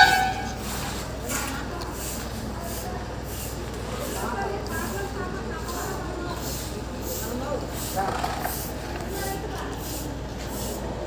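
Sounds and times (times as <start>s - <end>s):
indistinct voices talking: 0.0s - 11.0s
steady background noise: 0.0s - 11.0s.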